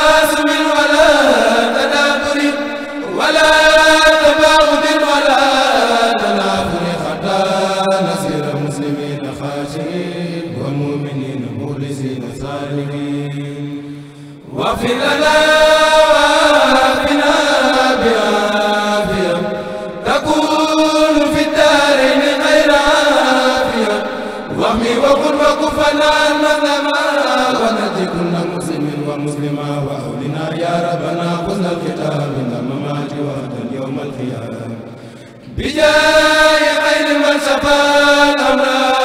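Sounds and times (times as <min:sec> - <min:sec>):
men chanting in held notes: 0:00.0 - 0:39.0.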